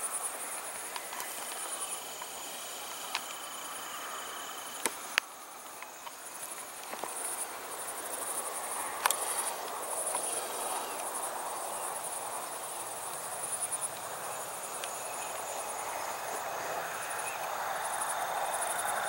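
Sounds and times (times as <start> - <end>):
crickets chirping: 0.0 - 19.0
outdoor background rush: 0.0 - 19.0.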